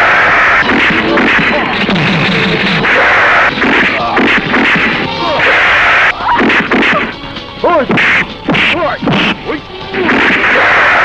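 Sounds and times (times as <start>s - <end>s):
fighters grunting and yelling: 0.0s - 11.0s
punch and hit whacks: 3.0s - 5.7s, 6.4s - 7.1s, 10.0s - 10.9s.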